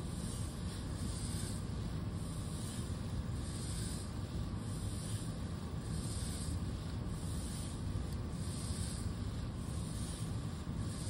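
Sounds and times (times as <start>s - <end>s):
servo motors humming: 0.0s - 11.0s.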